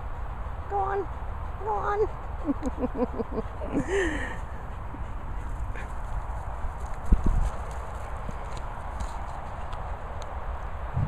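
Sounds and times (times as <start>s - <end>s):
wind rumbling on microphone: 6.3s - 11.0s.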